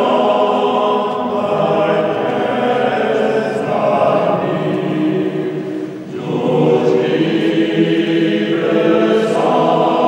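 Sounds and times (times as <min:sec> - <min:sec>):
mixed choir singing held chords: 0:00.0 - 0:10.0.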